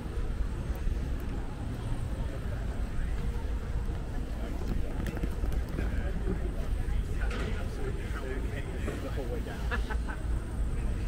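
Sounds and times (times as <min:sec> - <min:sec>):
low rumble of traffic: 0:00.0 - 0:11.0
passers-by talking: 0:00.0 - 0:11.0.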